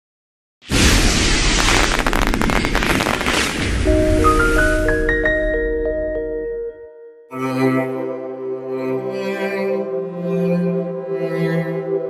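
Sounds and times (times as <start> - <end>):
firework sparks crackling and fizzing: 0.6 - 3.9.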